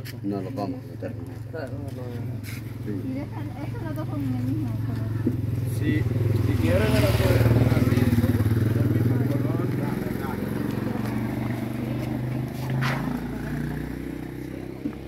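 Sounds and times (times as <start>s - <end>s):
small motorcycle engine running: 2.8s - 15.0s.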